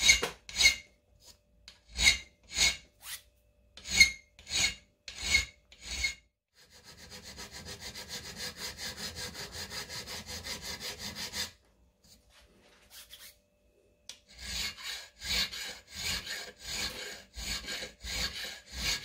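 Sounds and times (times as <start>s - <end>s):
hand file rasping on metal: 0.0s - 0.9s, 1.7s - 3.2s, 3.8s - 11.6s, 14.2s - 19.0s.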